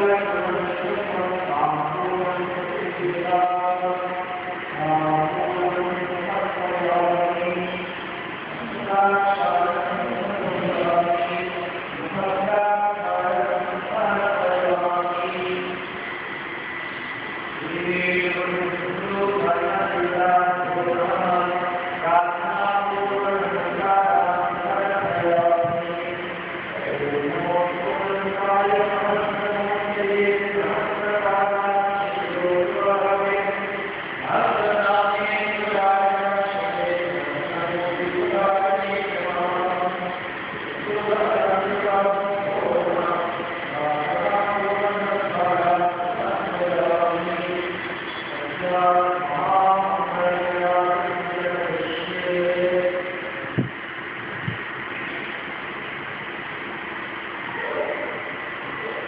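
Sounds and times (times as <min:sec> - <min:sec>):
devotional chanting: 0:00.0 - 0:59.0
noisy background hum: 0:00.0 - 0:59.0.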